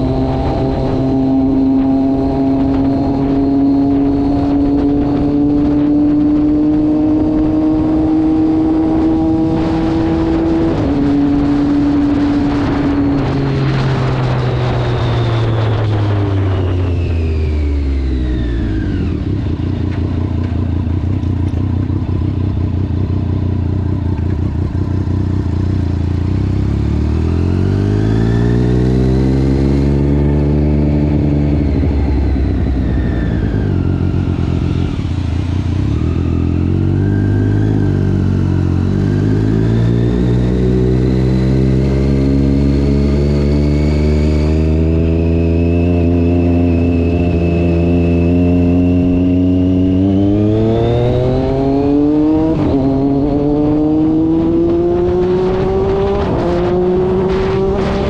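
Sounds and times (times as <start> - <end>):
motorcycle engine accelerating: 0.0 - 58.0.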